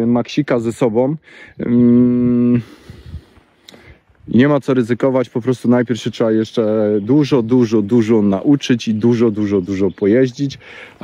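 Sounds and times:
man's drawn-out hesitation sound: 0.0 - 3.0.

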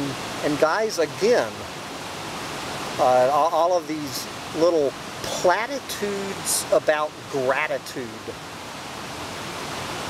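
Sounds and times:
creek water rushing: 0.0 - 10.0.

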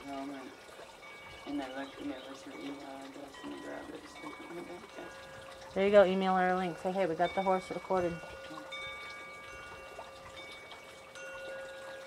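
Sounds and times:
chimes ringing softly: 0.0 - 12.0.

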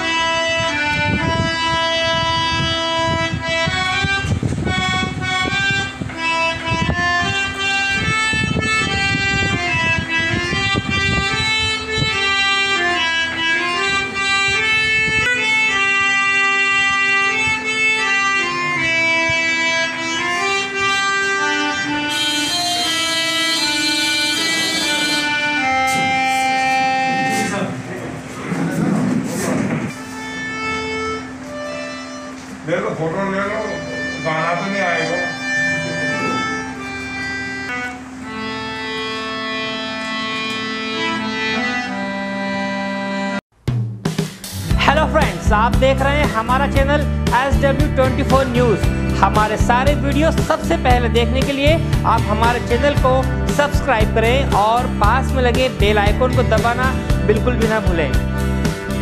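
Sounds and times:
harmonium playing slow melody: 0.0 - 28.0, 29.9 - 43.4, 44.5 - 59.0.

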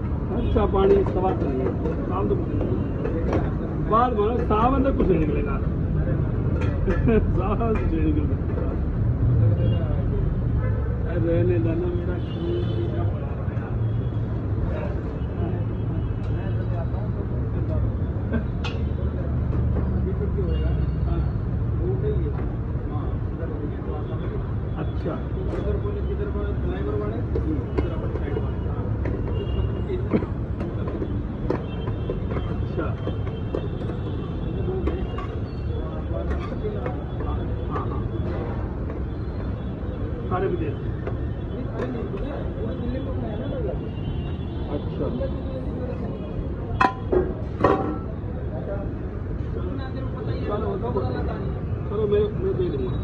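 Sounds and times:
low street rumble: 0.0 - 53.0.

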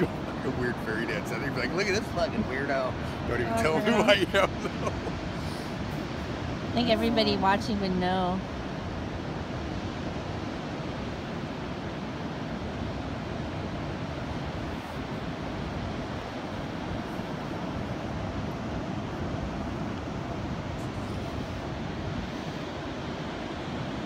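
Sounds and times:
ocean surf rushing: 0.0 - 24.0
wind: 0.0 - 24.0.

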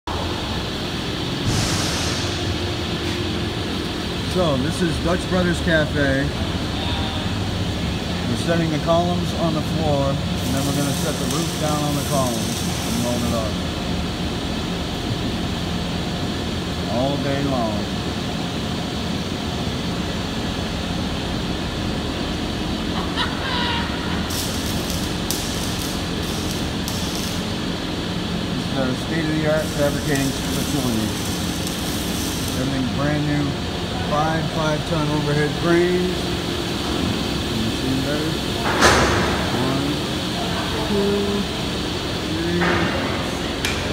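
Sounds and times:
fans and machinery hum: 0.0 - 43.9
mechanical drone of workshop: 0.0 - 43.9
arc welder crackling: 7.7 - 15.7, 22.6 - 42.5.

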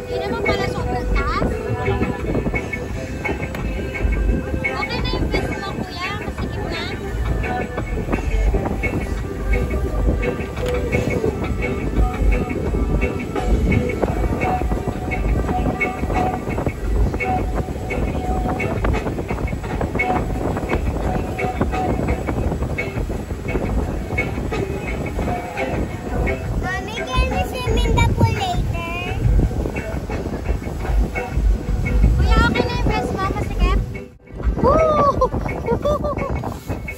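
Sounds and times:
background music with repeating notes: 0.0 - 36.9
speedboat engine: 0.0 - 36.9
voices: 0.0 - 36.9
wind on microphone: 0.0 - 36.9.

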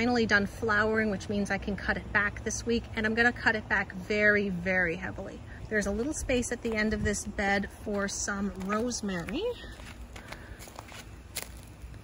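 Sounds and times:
footsteps on wood-chip mulch: 5.8 - 12.0.

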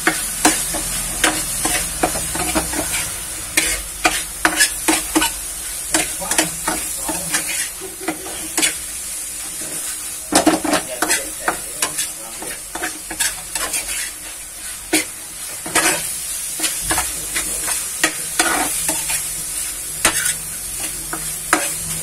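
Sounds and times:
food sizzling in a frying pan: 0.0 - 22.0
spatula scraping a pan: 0.0 - 22.0.

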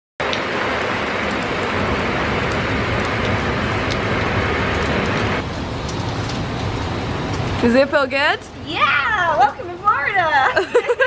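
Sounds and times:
heavy rain falling: 0.2 - 11.0
sharp ticks of raindrops: 0.2 - 11.0.

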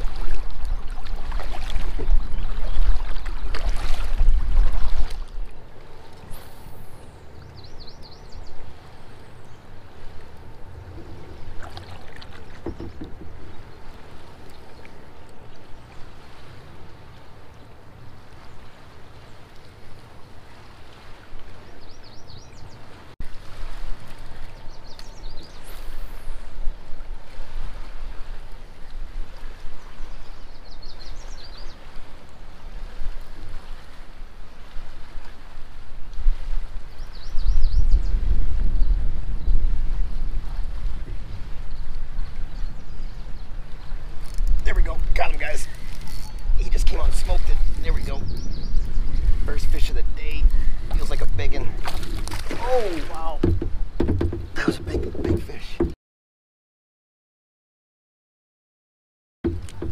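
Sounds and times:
wind buffeting microphone: 0.0 - 19.4, 20.0 - 55.7
water lapping against kayak: 0.0 - 56.0, 59.4 - 59.9.

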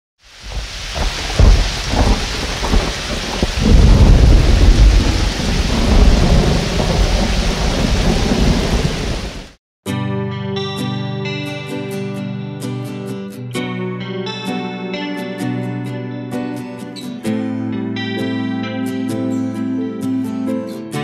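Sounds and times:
heavy rain: 0.2 - 9.6
thunder rumbling: 0.4 - 9.6.

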